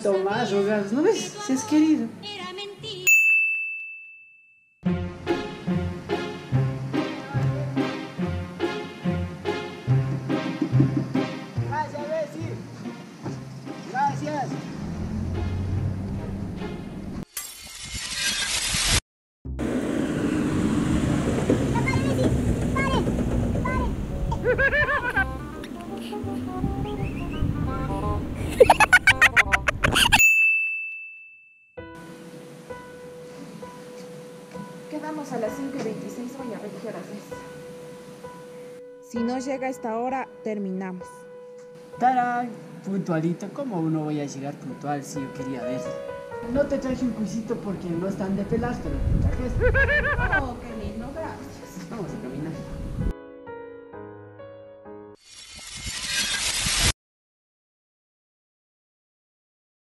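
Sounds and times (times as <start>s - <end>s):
bell-like chime ding: 3.1s - 4.8s, 30.2s - 31.8s
background music: 4.8s - 17.2s, 23.2s - 29.8s, 31.8s - 55.2s.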